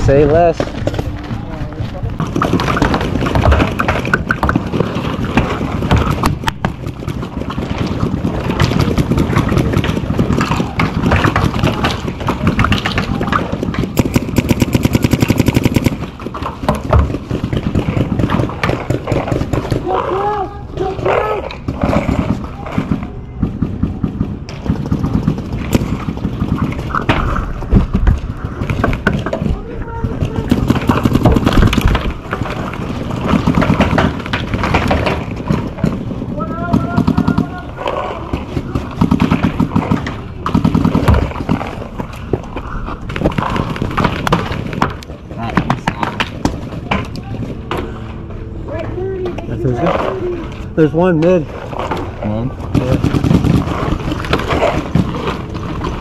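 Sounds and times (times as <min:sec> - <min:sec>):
players' voices: 0:00.0 - 0:16.2, 0:17.4 - 0:44.0, 0:44.6 - 0:55.6
paintball markers firing: 0:02.2 - 0:19.9, 0:21.6 - 0:27.4, 0:30.3 - 0:36.0.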